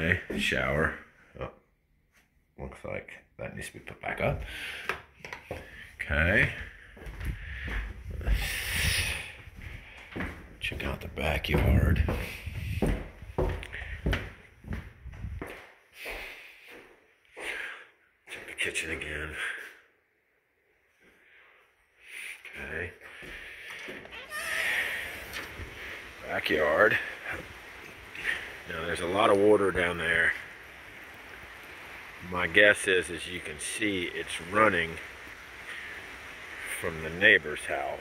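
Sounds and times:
person exhaling breathily: 7.4s - 10.0s, 23.2s - 26.1s
door creaking open: 23.7s - 25.7s.

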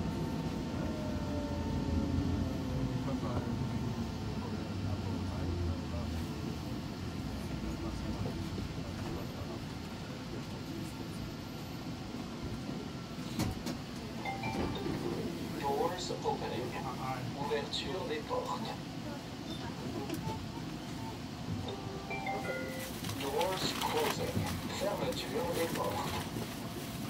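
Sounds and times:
train running rumble: 0.0s - 18.6s, 19.3s - 27.0s.

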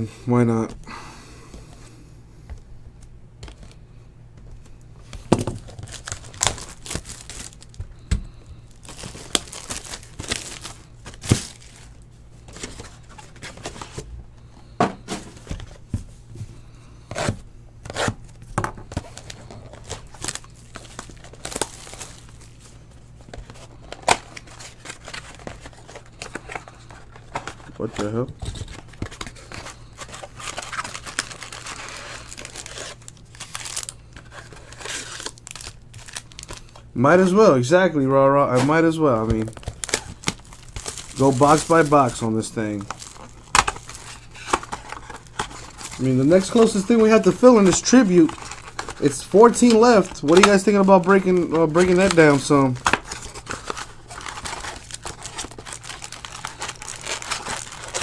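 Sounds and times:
plastic wrap crinkling and tearing: 5.2s - 8.1s, 8.7s - 14.0s, 18.8s - 36.9s, 38.6s - 58.0s.

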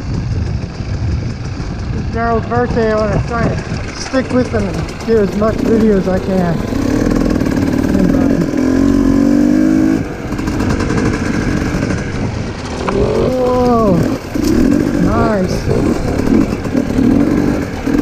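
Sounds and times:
dirt bike engine revving: 1.1s - 18.0s.

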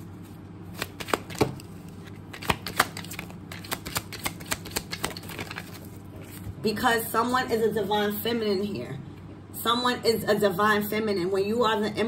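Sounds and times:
cards being shuffled: 0.1s - 6.5s.

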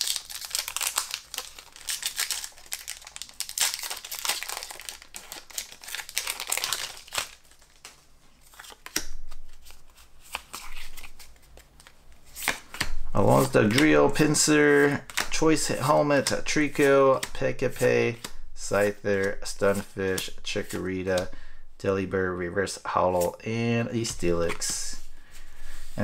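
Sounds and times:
foil wrapper crinkling and tearing: 0.0s - 9.0s
cards rustling and clicking: 0.0s - 21.3s, 24.0s - 25.0s.

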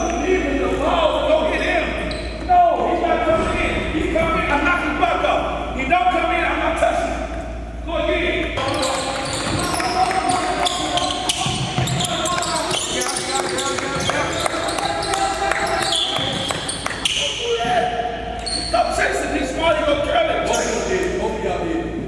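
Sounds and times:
people talking in echoing gym: 0.0s - 22.0s.

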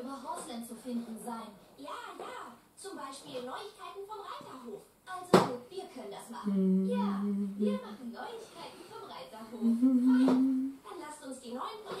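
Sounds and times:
quiet television voices: 0.0s - 12.0s.

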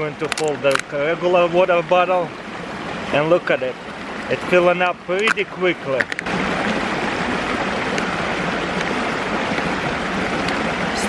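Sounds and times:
stream running over rock: 0.0s - 11.0s.

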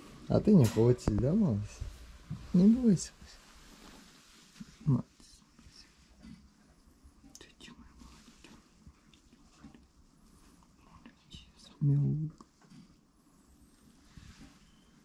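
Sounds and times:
man speaking softly: 0.3s - 1.9s, 2.5s - 3.4s, 4.7s - 6.0s, 10.8s - 12.6s
hand stroking fur: 1.3s - 5.0s.

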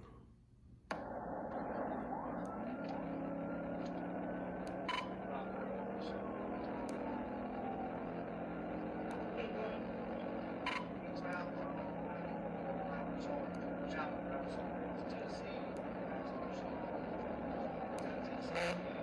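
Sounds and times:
car engine and road noise: 0.9s - 19.0s.

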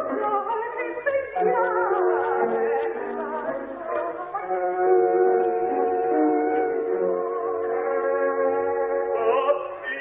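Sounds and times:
old recording crackle: 0.0s - 4.4s.

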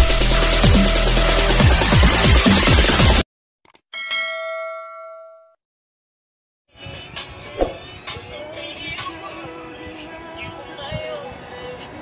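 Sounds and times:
bell chime: 4.0s - 5.6s.

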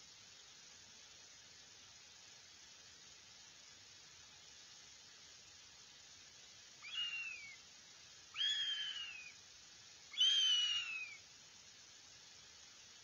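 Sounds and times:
hawk chick wailing calls: 6.8s - 7.6s, 8.4s - 9.3s, 10.1s - 11.2s.

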